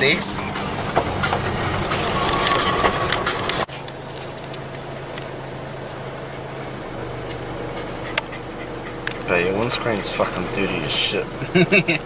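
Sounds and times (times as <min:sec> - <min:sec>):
rattles: 0:00.0 - 0:05.3
road noise on gravel: 0:00.0 - 0:12.0
vehicle engine hum: 0:00.0 - 0:12.0.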